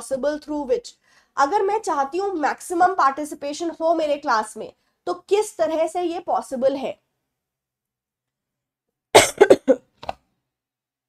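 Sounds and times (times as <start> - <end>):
woman coughing: 9.2 - 9.9.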